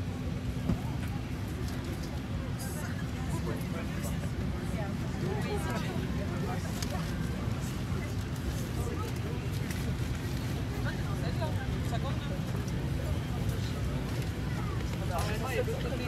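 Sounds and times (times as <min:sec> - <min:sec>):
passengers talking: 0:00.0 - 0:16.0.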